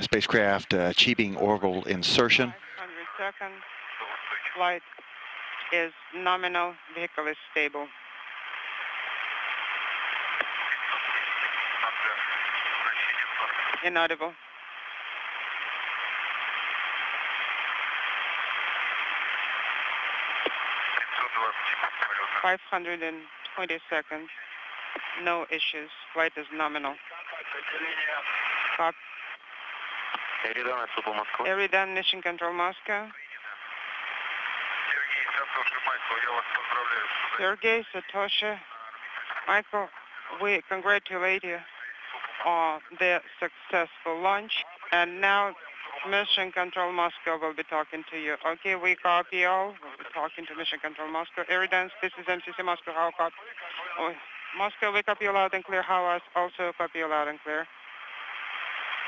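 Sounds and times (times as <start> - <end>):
garbled voice over radio: 0.0 - 3.4
voice over radio: 0.0 - 4.8, 10.4 - 14.3, 20.8 - 29.3, 30.2 - 33.9, 34.7 - 57.6
radio hiss: 0.0 - 59.0.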